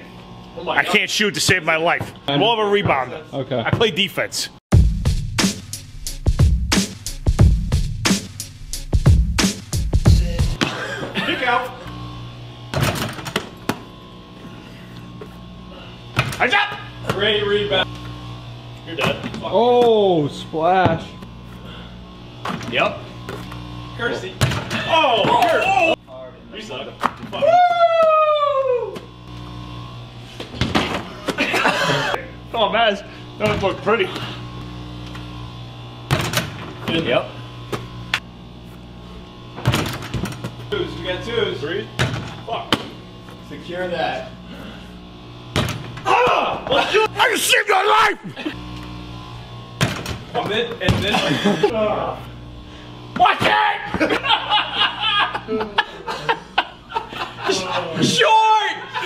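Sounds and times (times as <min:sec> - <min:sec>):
steady low hum: 0:00.0 - 0:59.0
basketball bouncing thumps: 0:12.7 - 0:13.9, 0:24.4 - 0:25.4, 0:36.1 - 0:37.0, 0:39.6 - 0:40.7, 0:42.0 - 0:43.0, 0:45.5 - 0:46.1, 0:49.8 - 0:51.2
basketball knocking against hoop: 0:12.7 - 0:13.9, 0:36.1 - 0:37.0, 0:39.6 - 0:40.6, 0:42.0 - 0:43.0, 0:45.5 - 0:46.1, 0:49.8 - 0:51.2.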